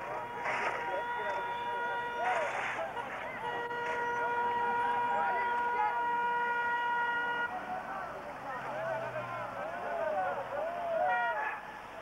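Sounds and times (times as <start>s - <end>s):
voices chattering: 0.0s - 12.0s
vehicle horn long note: 0.1s - 7.5s.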